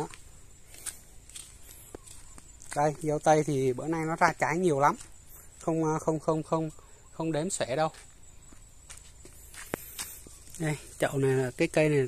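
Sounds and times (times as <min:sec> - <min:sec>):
footsteps on dirt path: 0:00.0 - 0:05.8, 0:07.9 - 0:11.4.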